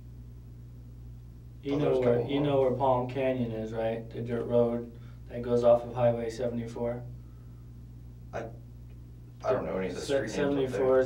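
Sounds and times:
steady low hum: 0.0 - 11.0
person speaking: 9.4 - 11.0.

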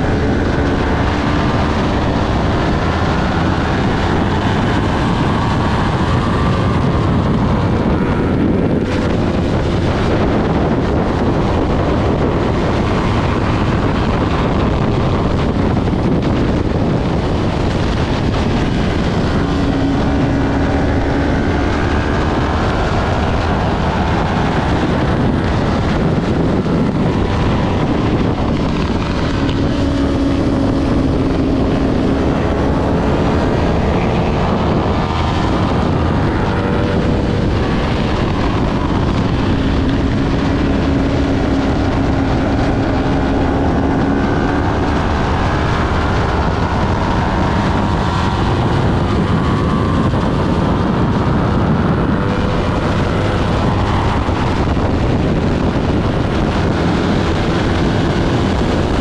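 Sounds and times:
motorcycle engine revving: 0.0 - 59.0
wind noise: 0.0 - 59.0.

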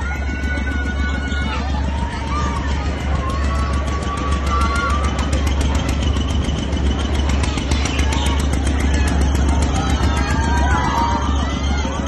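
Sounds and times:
fairground ride mechanical drone: 0.0 - 12.0
voices: 0.0 - 12.0.

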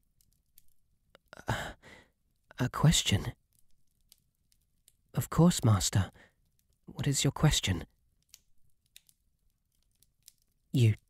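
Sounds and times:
man sighing: 1.3 - 2.0.

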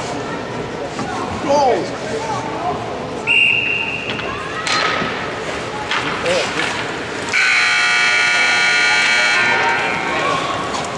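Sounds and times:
scoreboard horn blast: 7.3 - 10.0.

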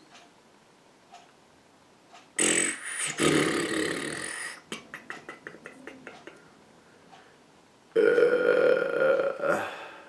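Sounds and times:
person burping: 2.4 - 6.1, 7.9 - 10.0.

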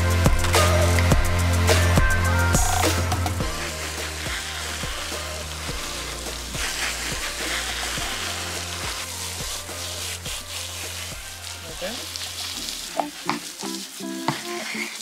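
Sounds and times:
background music with beat: 0.0 - 15.0
hose nozzle spraying water: 0.0 - 15.0.

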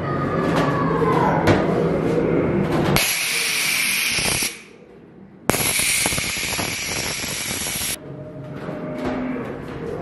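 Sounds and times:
compressed air hissing blasts: 3.0 - 4.7, 5.5 - 8.0.

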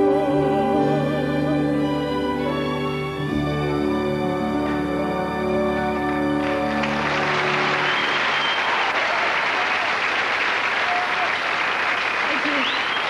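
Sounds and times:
audience applause: 5.6 - 13.0.

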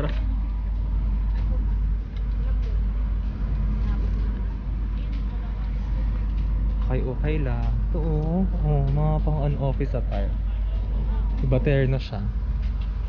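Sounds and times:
steady low rumble: 0.0 - 13.0
faint voices of people: 7.9 - 11.9.

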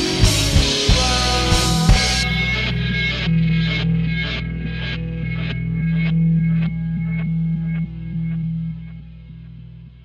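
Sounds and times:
electric guitar picking notes: 0.0 - 10.0
sustained low tone: 0.0 - 10.0.

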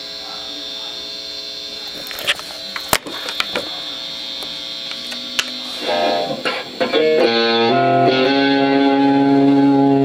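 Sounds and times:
electrical hum: 0.0 - 10.0
electric guitar notes: 2.7 - 10.0.

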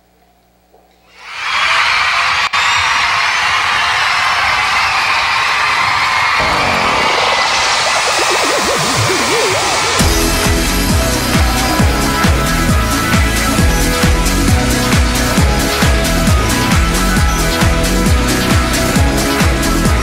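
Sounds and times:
wobbling synth tone: 6.4 - 19.2.

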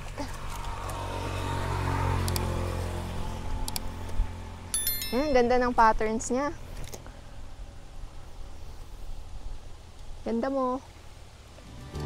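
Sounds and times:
vehicle engine passing: 0.3 - 5.5.

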